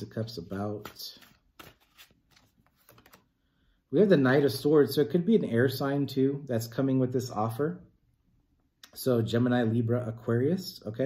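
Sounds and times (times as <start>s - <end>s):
cards being shuffled: 0.4s - 3.3s.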